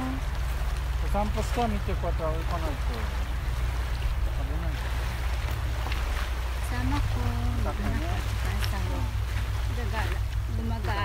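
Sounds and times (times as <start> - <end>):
woman talking: 6.6 - 11.0.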